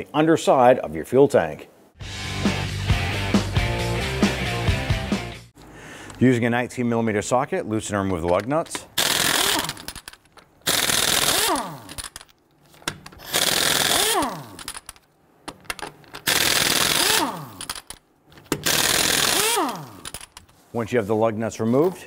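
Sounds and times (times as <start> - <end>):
impact wrench hammering: 9.0 - 12.3, 12.9 - 20.4
impact wrench winding down: 9.0 - 12.3, 12.9 - 15.0, 16.2 - 20.4.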